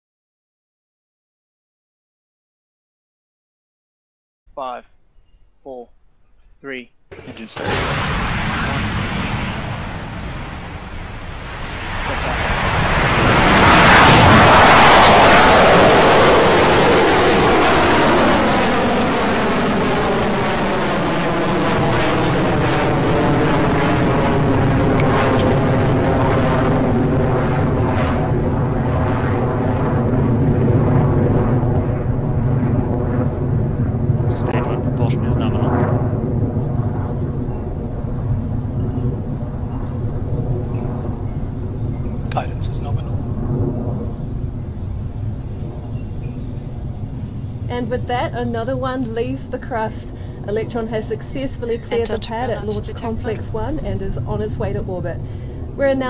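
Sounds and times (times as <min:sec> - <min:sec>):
rocket engine roar: 0:07.1 - 0:56.0.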